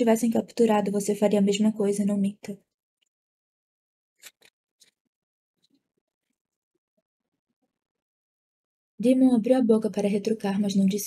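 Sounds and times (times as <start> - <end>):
book page turning: 4.2 - 5.0.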